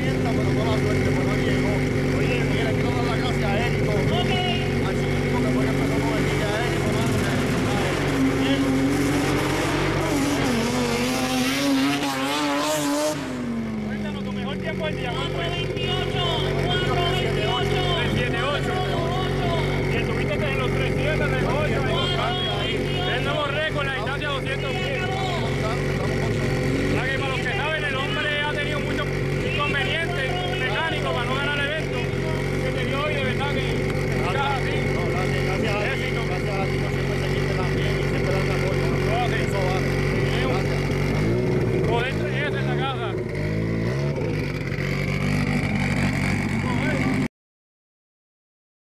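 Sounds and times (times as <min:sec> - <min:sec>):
people talking: 0:00.0 - 0:10.6, 0:13.8 - 0:41.0, 0:41.6 - 0:43.3, 0:46.5 - 0:47.3
truck engine idling and revving: 0:00.0 - 0:47.3.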